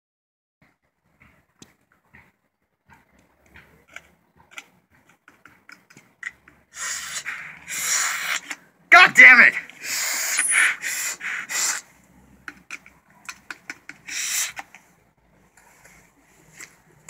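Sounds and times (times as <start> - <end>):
sucking through a straw: 6.7 - 8.5, 9.8 - 11.9, 14.0 - 14.7.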